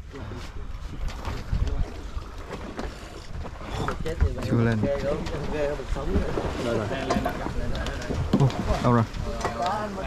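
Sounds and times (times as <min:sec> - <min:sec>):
wind buffeting microphone: 0:00.5 - 0:02.4
people talking over one another: 0:03.6 - 0:10.0.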